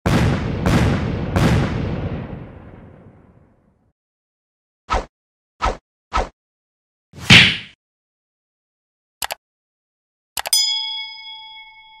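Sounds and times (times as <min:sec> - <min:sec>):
notification bell ding: 0:10.5 - 0:12.0.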